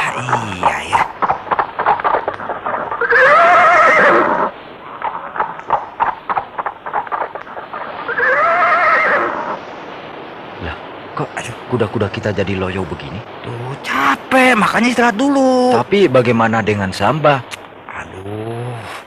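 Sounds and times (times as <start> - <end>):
horse hooves clopping: 0.0 - 9.2
horse whinnying: 1.8 - 5.5, 6.3 - 9.6.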